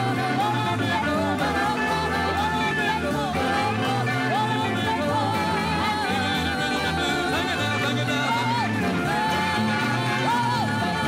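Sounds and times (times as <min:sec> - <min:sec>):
live band with piano and guitars: 0:00.0 - 0:11.0
woman singing into microphone: 0:00.0 - 0:11.0.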